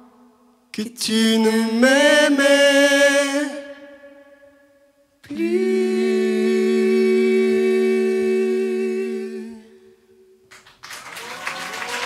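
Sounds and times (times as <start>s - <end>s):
woman and man singing in harmony: 0.8s - 4.0s, 5.2s - 10.0s
audience applause: 10.5s - 12.0s.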